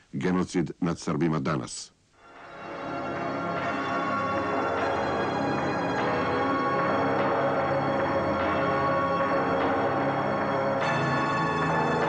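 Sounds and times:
dark music with ringing bells: 2.2 - 12.0.

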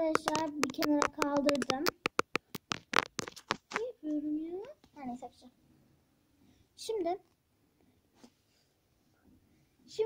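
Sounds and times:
hard objects clicking and tapping: 0.0 - 3.8.

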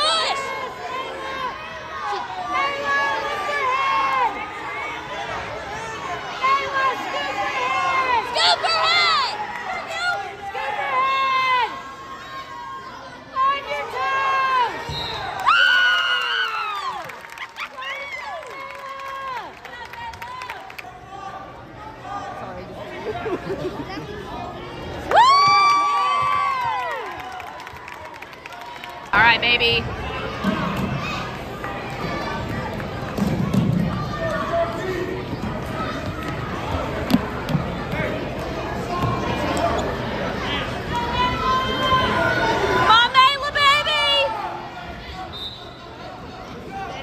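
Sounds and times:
spectators chattering in a gymnasium: 0.0 - 47.0.

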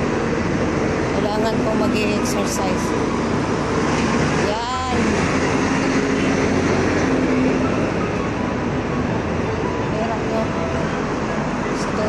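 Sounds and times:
bus driving past: 0.0 - 12.0
road traffic: 0.0 - 12.0.

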